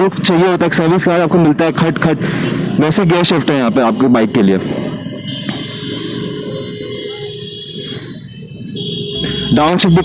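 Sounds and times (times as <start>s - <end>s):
motorcycle engine at low speed: 0.0s - 9.8s
road and wind noise: 0.0s - 10.0s.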